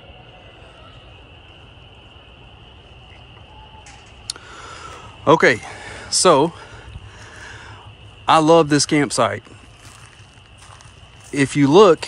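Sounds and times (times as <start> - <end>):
chorus of frogs calling: 0.0 - 12.0.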